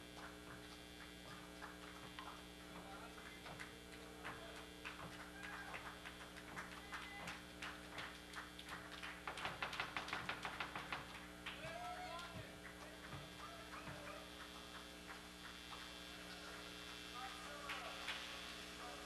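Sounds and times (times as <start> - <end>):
audience clapping: 0.0 - 19.0
electrical hum: 0.0 - 19.0
person shouting: 11.6 - 12.5.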